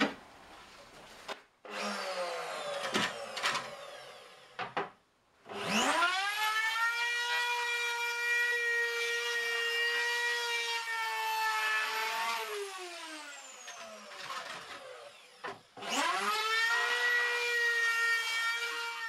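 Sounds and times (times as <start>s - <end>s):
electric router whine: 1.7s - 4.9s, 5.5s - 19.0s.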